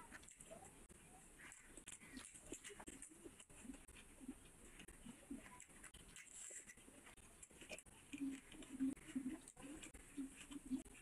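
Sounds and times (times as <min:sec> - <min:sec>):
wet chewing clicks: 0:00.0 - 0:11.0.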